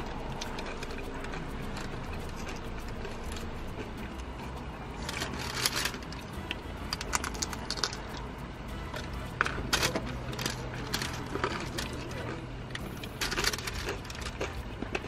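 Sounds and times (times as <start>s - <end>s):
steady low hum: 0.0s - 15.0s
paper wrapper crinkling: 5.0s - 6.2s, 13.1s - 14.5s
crunchy taco shell bites: 9.7s - 15.0s.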